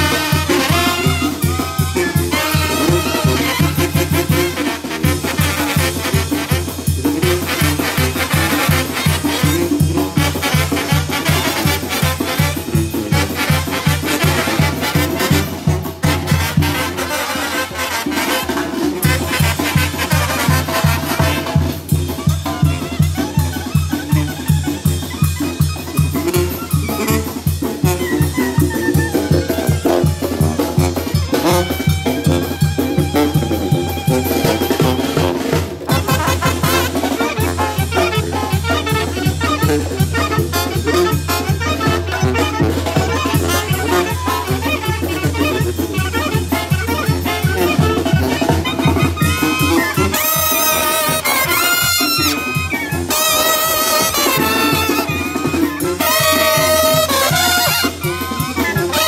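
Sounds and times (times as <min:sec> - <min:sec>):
held brass chords: 0:00.0 - 0:22.0, 0:25.9 - 0:28.4, 0:29.5 - 0:59.0
brass band playing: 0:00.0 - 0:59.0
drum kit and congas beat: 0:00.0 - 0:59.0.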